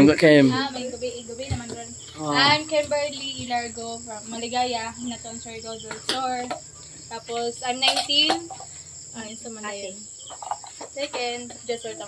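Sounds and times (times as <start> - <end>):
crickets droning: 0.0 - 12.0
woman talking: 0.4 - 10.1, 10.8 - 12.0.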